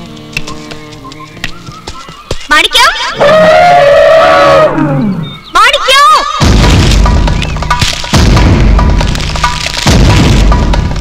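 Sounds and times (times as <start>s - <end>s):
film music with booming drums: 6.2s - 11.0s.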